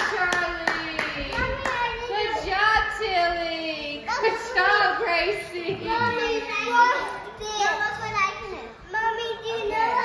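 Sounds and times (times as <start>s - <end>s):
hand clapping: 0.0s - 2.0s.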